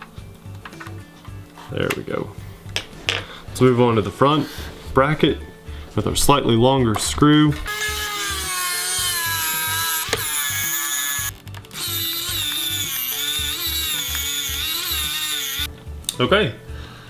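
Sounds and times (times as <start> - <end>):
background music with steady beat: 0.0 - 17.0
electric screwdriver whining: 7.7 - 15.7.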